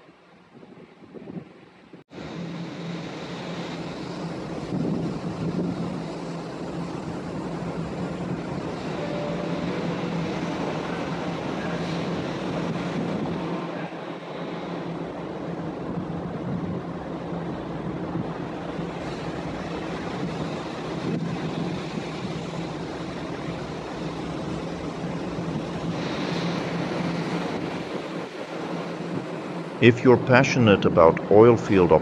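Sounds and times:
machinery low hum: 0:02.1 - 0:32.0
rushing hiss: 0:18.4 - 0:29.8.

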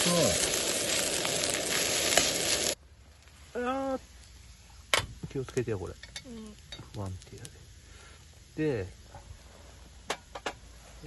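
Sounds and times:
fried rice sizzling in skillet: 0:00.0 - 0:03.4, 0:04.0 - 0:11.0.

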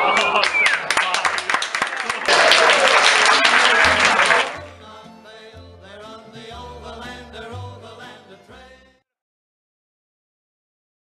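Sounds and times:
audience applauding: 0:00.0 - 0:04.8
background music with bass line: 0:04.6 - 0:09.0.

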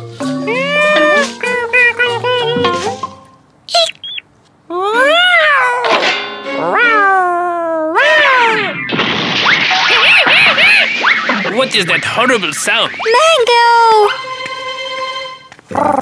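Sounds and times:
cartoon cat meowing: 0:03.7 - 0:04.2, 0:04.8 - 0:05.9, 0:06.6 - 0:08.7.

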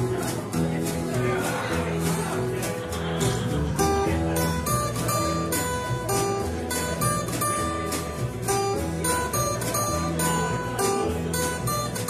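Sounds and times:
acoustic guitar strumming: 0:00.0 - 0:12.0
plucked upright bass: 0:00.0 - 0:12.0.

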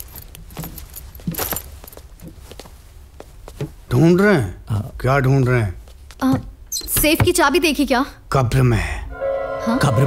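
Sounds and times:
rummaging through a wardrobe: 0:00.0 - 0:03.9.

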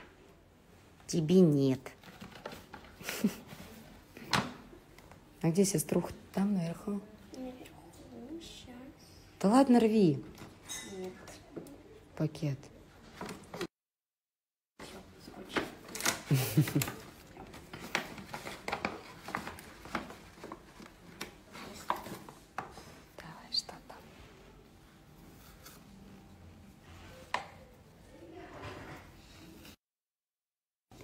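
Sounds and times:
paper bag rustling and crinkling: 0:01.9 - 0:04.0, 0:14.8 - 0:22.5.

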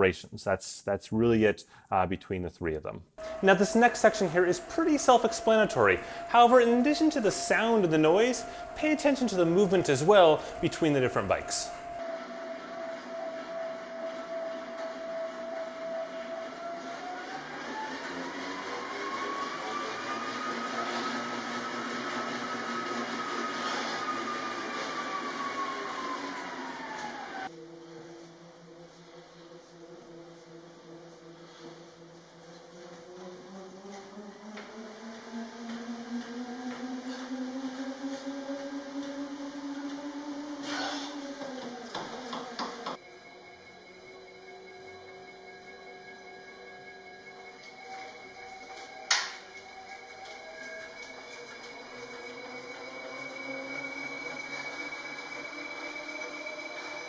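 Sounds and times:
exercise bike low hum: 0:03.1 - 0:57.0
exercise bike drivetrain whine: 0:03.2 - 0:57.0.

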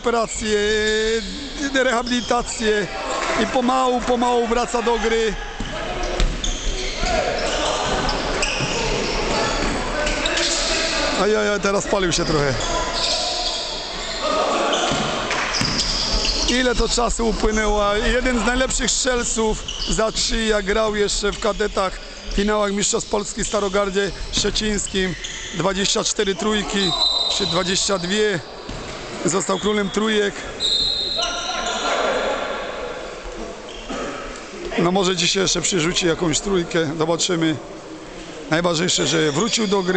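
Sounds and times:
players' voices: 0:00.0 - 0:39.9
basketball bouncing on court: 0:05.6 - 0:06.5, 0:14.9 - 0:16.2.

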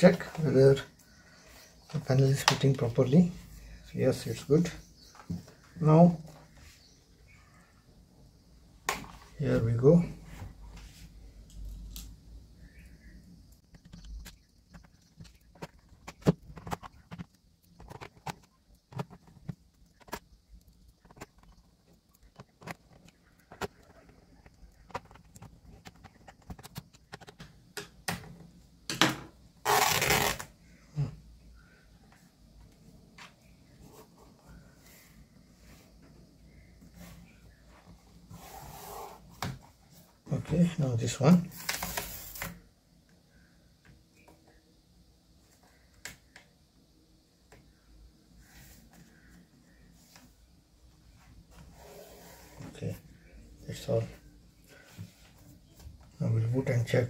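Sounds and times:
faint plastic clicks and rubbing: 0:12.8 - 0:28.4.

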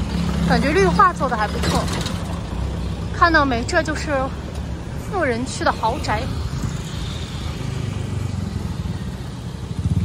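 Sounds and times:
motorcycle engine rumbling: 0:00.0 - 0:10.0.

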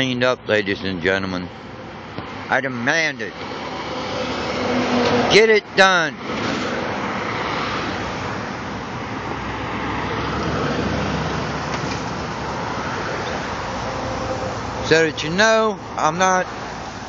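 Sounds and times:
road traffic noise: 0:00.0 - 0:17.0.

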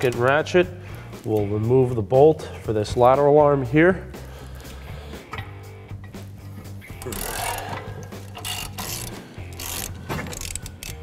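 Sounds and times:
background music: 0:00.0 - 0:11.0
ratchet clicking: 0:06.9 - 0:11.0.

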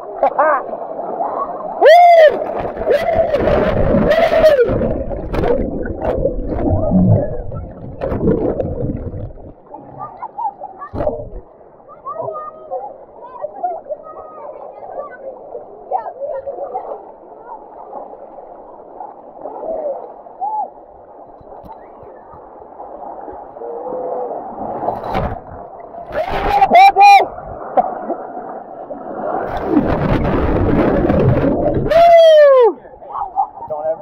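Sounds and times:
underwater whitewater bubbles gurgling: 0:00.0 - 0:11.8, 0:27.2 - 0:31.9
muffled water rushing and splashing: 0:00.0 - 0:34.0.

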